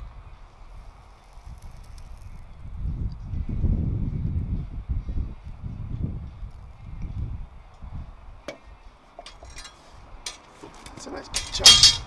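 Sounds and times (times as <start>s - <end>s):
metal crucible clinking on concrete: 9.2s - 10.5s, 11.3s - 12.0s.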